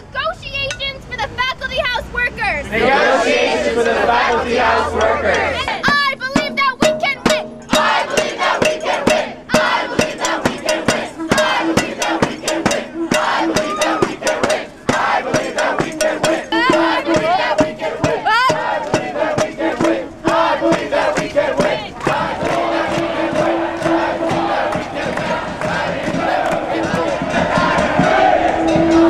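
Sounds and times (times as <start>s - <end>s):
crowd chanting and shouting: 2.4s - 29.0s
hand-beaten drums: 3.3s - 29.0s.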